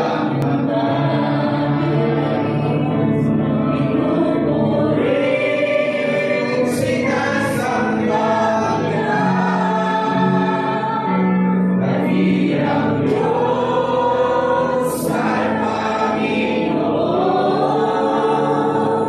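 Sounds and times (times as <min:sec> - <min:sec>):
congregation singing worship song: 0:00.0 - 0:19.0.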